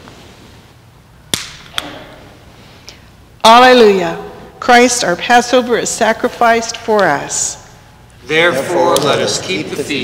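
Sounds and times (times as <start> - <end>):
bread snapping: 1.3 - 1.9.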